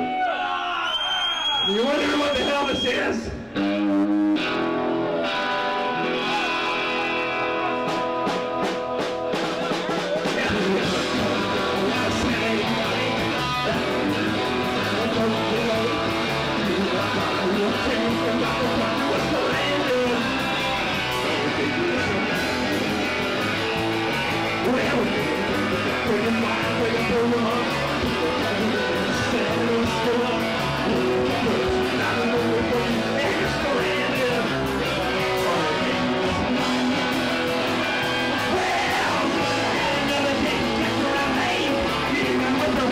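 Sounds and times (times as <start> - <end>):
drums: 0.0 - 42.9
electric guitar: 2.7 - 42.9
bass guitar: 3.2 - 42.9.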